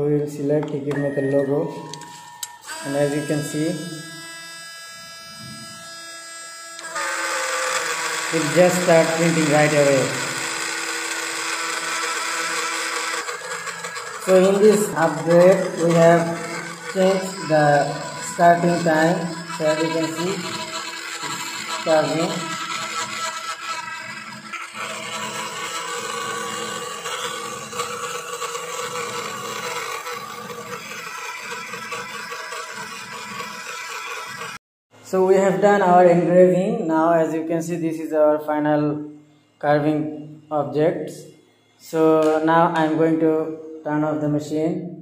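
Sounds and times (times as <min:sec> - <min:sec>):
spindle motor whining: 0:01.7 - 0:35.2.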